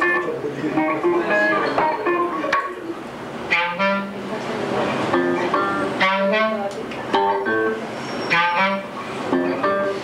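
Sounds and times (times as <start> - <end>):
electric guitar playing: 0.0 - 10.0
clarinet melody: 3.5 - 4.2, 5.1 - 10.0.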